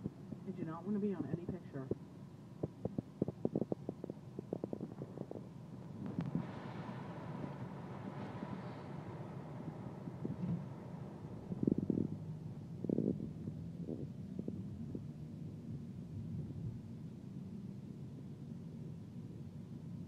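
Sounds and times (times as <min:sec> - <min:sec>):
car interior noise while driving: 0:00.0 - 0:20.0.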